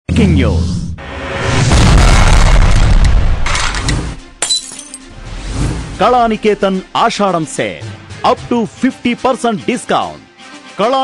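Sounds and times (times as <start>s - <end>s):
deep boom: 1.0s - 4.4s.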